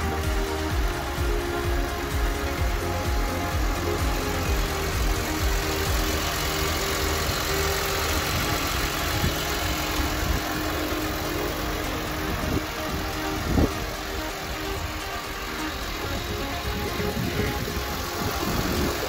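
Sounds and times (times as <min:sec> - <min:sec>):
background music: 0:00.0 - 0:19.0
car engine idling: 0:00.0 - 0:19.0.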